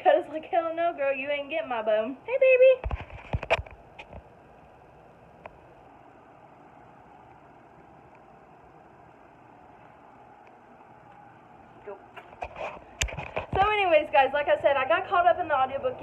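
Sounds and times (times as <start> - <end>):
room hiss and hum: 0.0 - 16.0.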